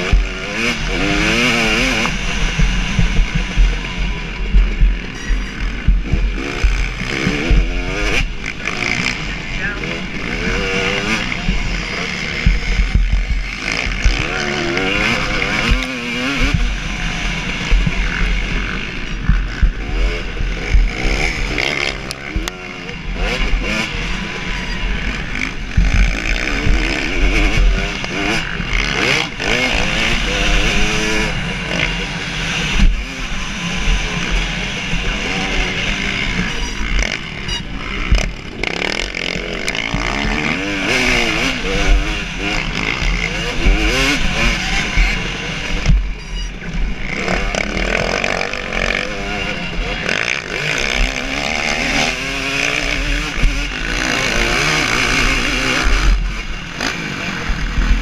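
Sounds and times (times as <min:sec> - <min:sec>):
motocross engine revving: 0:00.0 - 0:58.0.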